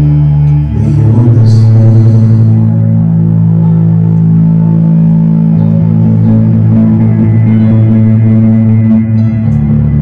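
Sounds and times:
electric bass guitar low notes: 0:00.0 - 0:10.0.

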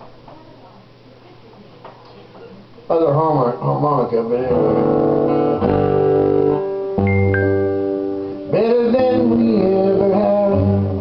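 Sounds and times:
acoustic guitar strumming: 0:03.6 - 0:11.0.

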